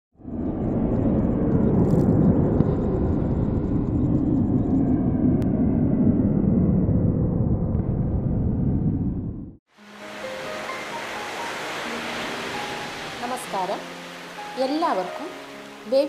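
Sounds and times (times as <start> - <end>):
dense low rumble: 0.2 - 9.6.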